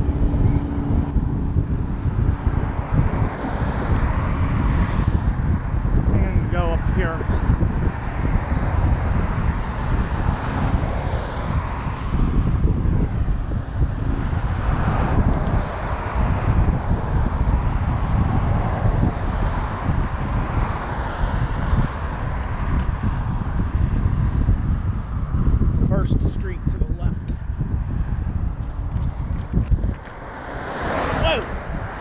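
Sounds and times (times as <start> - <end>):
cars passing: 0.0 - 32.0
wind buffeting microphone: 0.0 - 32.0.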